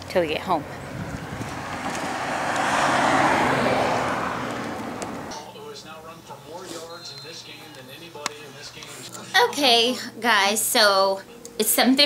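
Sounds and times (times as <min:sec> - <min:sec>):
car driving past: 0:00.4 - 0:05.5.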